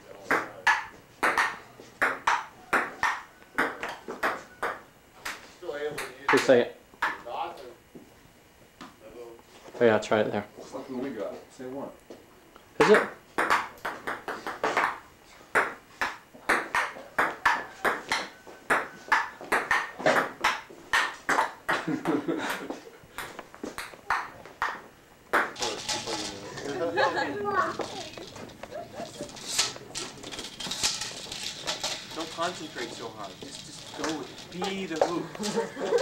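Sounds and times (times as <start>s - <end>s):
table tennis ball clicking: 0.4s - 5.4s, 15.6s - 21.8s
people talking: 25.6s - 29.9s, 32.0s - 36.0s.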